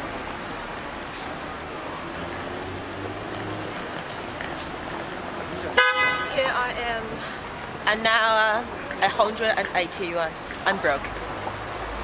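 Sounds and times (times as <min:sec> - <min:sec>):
city street traffic: 0:00.0 - 0:12.0
car horn honk: 0:05.8 - 0:06.4.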